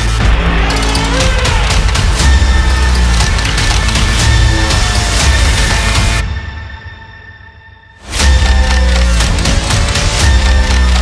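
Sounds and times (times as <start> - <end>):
crunchy mechanical clicks and hits: 0.0 - 6.1, 8.2 - 11.0.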